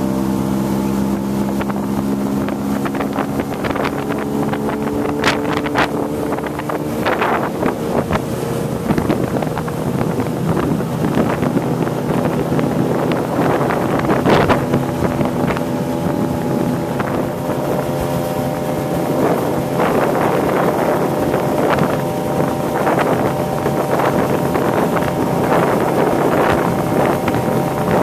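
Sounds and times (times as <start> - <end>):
outboard motor running: 0.0 - 28.0
water splashing: 0.0 - 28.0
wind buffeting microphone: 0.0 - 28.0.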